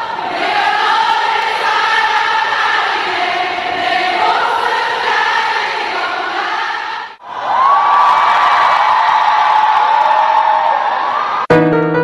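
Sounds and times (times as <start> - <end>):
crowd cheering and whooping: 7.2 - 11.5
piano playing chords: 11.5 - 12.0.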